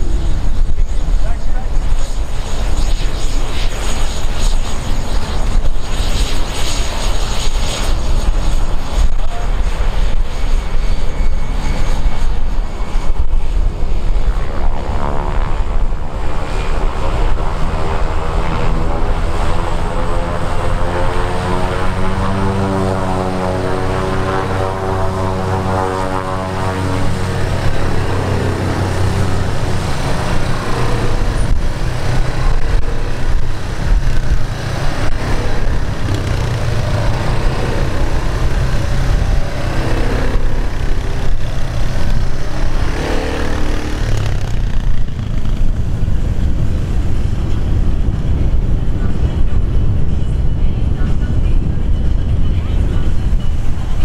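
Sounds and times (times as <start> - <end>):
turboprop plane taxiing: 0.0 - 54.0.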